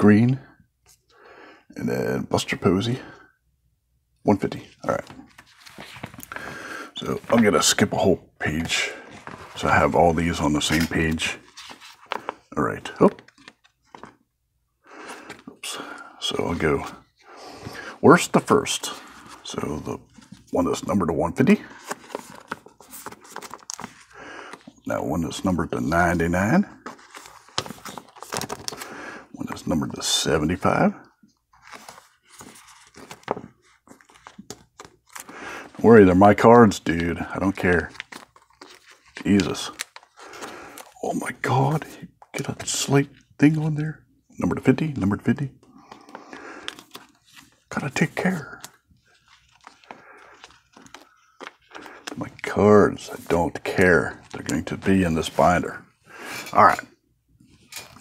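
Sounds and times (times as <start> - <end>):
plastic binder page crinkling: 4.9 - 7.7, 10.6 - 14.2, 21.6 - 24.8, 26.8 - 29.0, 31.5 - 41.7, 45.8 - 55.6, 57.4 - 58.0.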